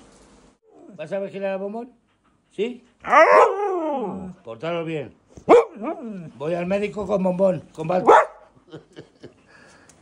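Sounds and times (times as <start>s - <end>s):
husky crying: 3.0s - 4.5s, 5.4s - 6.4s.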